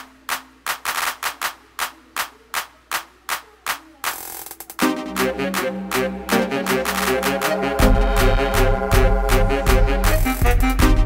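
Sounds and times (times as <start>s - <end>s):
sharp percussion hits: 4.1s - 11.0s.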